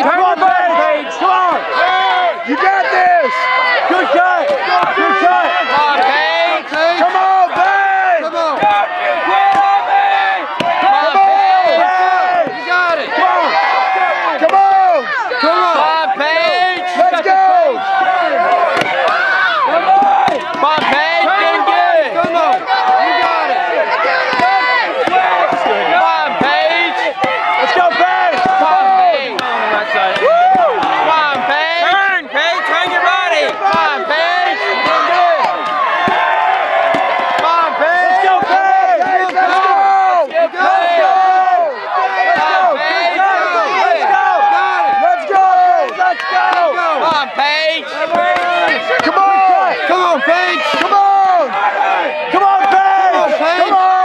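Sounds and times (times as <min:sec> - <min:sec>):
spectators shouting: 0:00.0 - 0:54.0
axe chopping wood: 0:09.4 - 0:09.8, 0:10.5 - 0:11.1, 0:18.7 - 0:19.2, 0:19.8 - 0:23.4, 0:24.2 - 0:31.8, 0:32.6 - 0:37.6.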